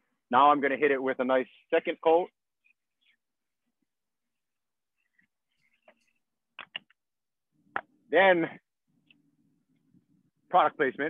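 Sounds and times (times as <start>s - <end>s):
short clicks: 6.6s - 7.0s.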